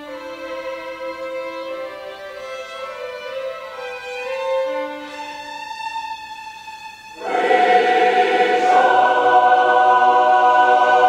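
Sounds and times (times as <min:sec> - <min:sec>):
choir singing sustained chords: 0:07.1 - 0:11.0.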